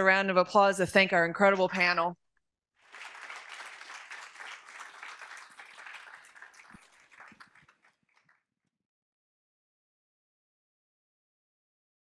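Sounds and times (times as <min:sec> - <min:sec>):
audience applauding: 0:02.8 - 0:08.4.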